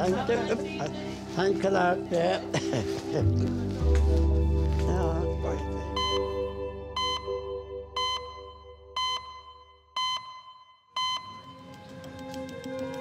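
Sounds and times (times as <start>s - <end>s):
soft music bed: 0.0s - 8.4s
background music: 0.0s - 10.2s, 11.0s - 13.0s.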